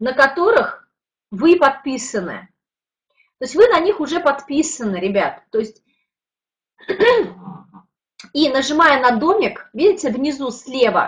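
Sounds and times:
woman clearing her throat: 6.8s - 7.8s.

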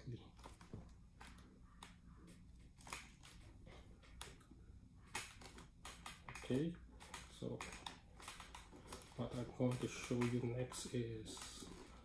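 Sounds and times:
clicks and rustles of helmet handling: 5.1s - 12.0s.

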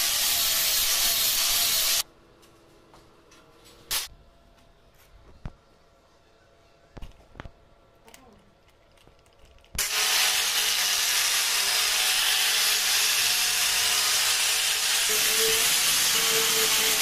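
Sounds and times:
angle grinder on metal tube: 0.0s - 2.0s, 9.8s - 17.0s.

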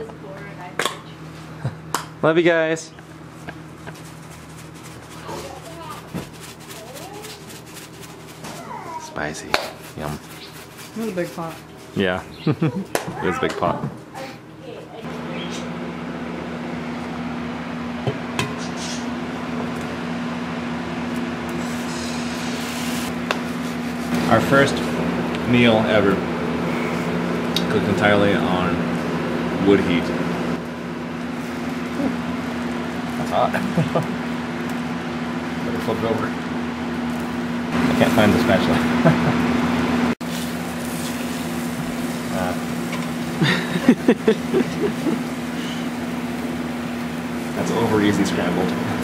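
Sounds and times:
steady low hum: 0.0s - 49.0s
egg frying in a skillet: 40.2s - 43.5s.

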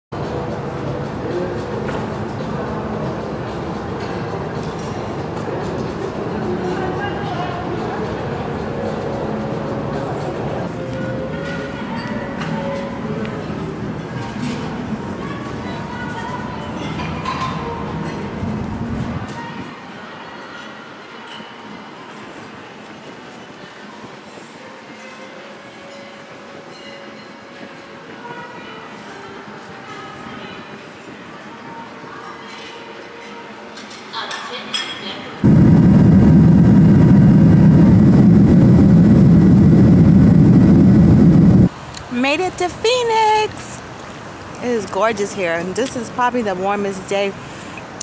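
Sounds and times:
continuous rumble and hiss: 0.2s - 25.8s, 27.6s - 48.0s
steady rumbling noise: 35.4s - 42.8s.

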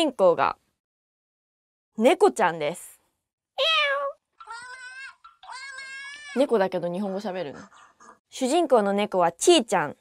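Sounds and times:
kitten meows: 3.6s - 4.2s.

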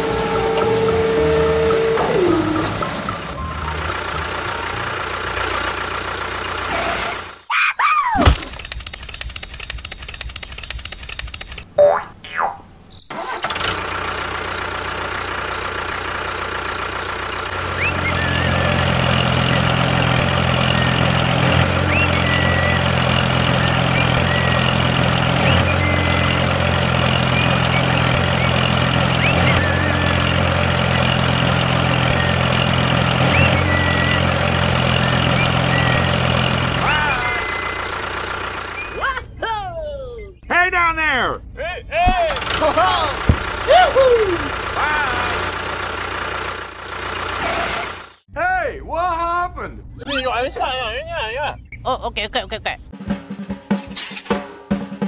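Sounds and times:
low engine drone: 0.0s - 7.4s, 14.2s - 39.4s
sliding boing-like tones: 11.8s - 12.6s.

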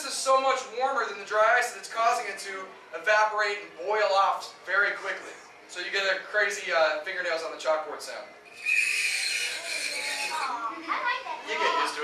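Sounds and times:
metal squealing on dry ice: 8.5s - 10.6s.

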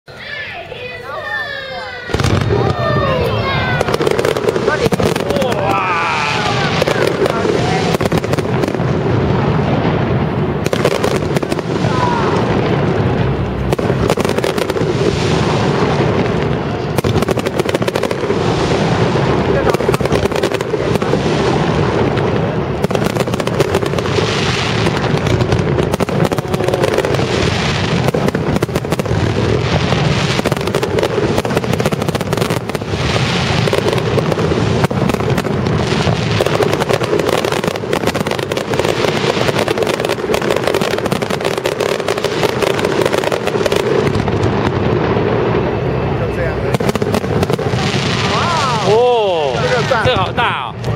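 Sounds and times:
fireworks bursting: 0.1s - 50.9s.

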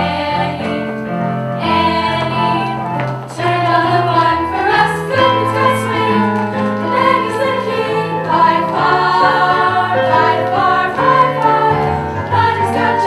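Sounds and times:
girls singing in chorus: 0.0s - 1.0s, 1.6s - 13.0s
instrumental accompaniment: 0.0s - 13.0s.

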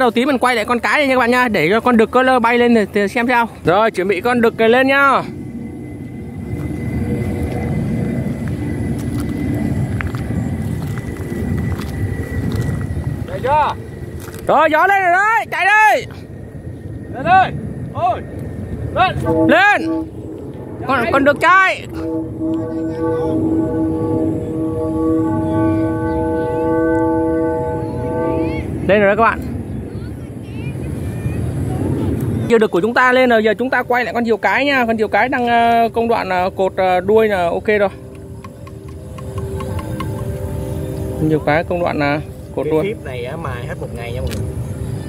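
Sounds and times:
faint high steady tone: 0.0s - 45.0s
kite flutes sounding chord: 0.0s - 45.0s
wind buffeting microphone: 0.0s - 45.0s.

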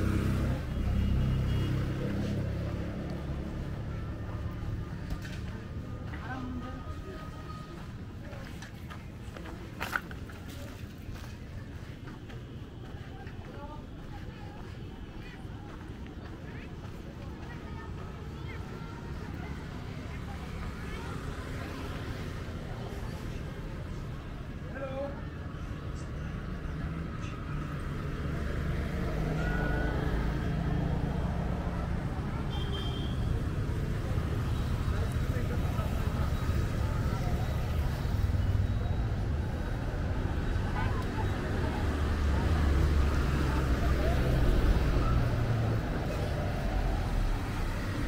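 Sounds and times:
passing traffic rumble: 0.0s - 48.0s.

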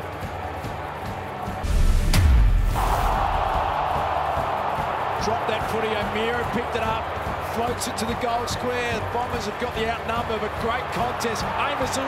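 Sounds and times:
background music: 0.0s - 12.0s
stadium crowd noise: 0.0s - 12.0s
deep boom with sharp hit: 1.6s - 3.8s.

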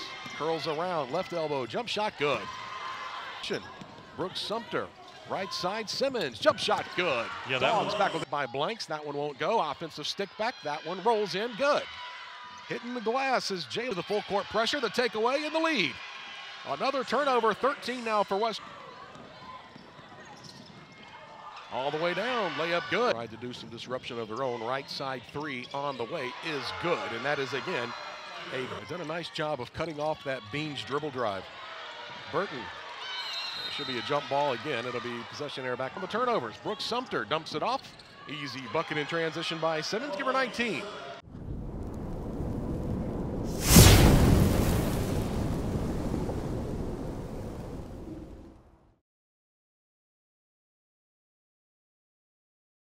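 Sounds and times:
arena noise: 0.0s - 41.2s
loud boom: 41.3s - 48.8s.

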